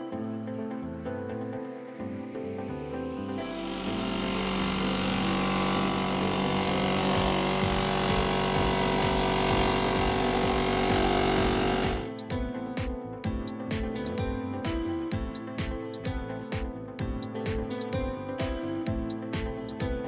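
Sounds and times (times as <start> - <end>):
air compressor running: 3.3 - 12.1.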